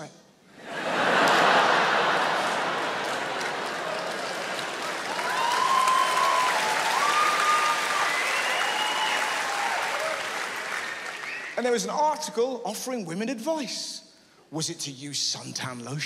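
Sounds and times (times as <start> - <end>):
audience applauding: 0.8 - 11.6
voices cheering: 0.8 - 11.6.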